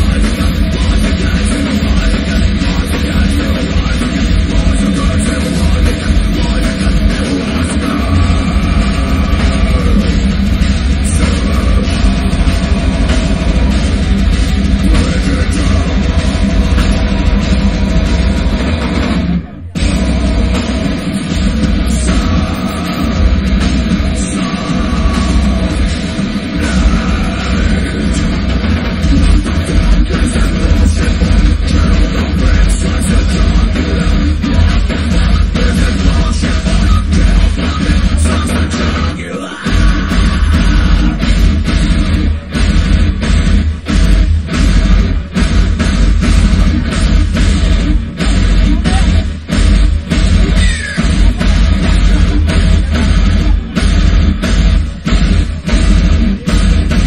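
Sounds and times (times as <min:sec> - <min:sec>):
drum kit: 0:00.0 - 0:57.0
heavy metal band playing: 0:00.0 - 0:57.0.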